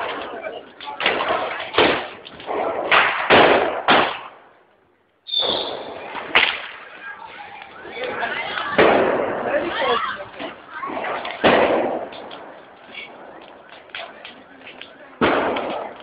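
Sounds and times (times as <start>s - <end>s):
street crowd voices: 0.0s - 16.0s
loud sudden bangs: 1.0s - 4.4s, 8.7s - 9.8s, 10.4s - 13.2s, 15.2s - 15.9s.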